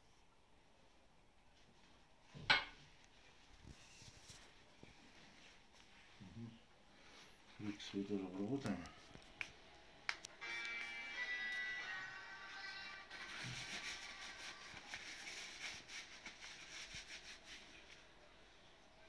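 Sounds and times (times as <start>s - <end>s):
paper napkin rustling: 13.1s - 18.1s.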